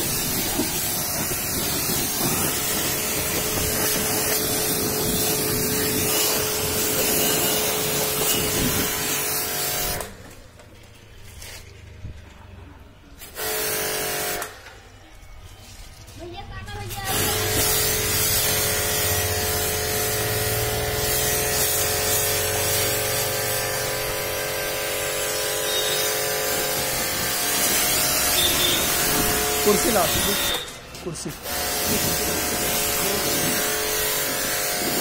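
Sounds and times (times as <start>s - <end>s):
pressure washer water jet hissing: 0.0s - 10.2s, 13.2s - 14.5s, 16.9s - 35.0s
pump motor whine: 17.2s - 35.0s.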